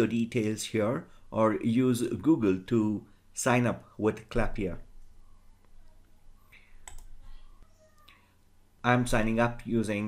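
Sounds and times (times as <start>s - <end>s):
computer mouse click: 6.8s - 7.1s.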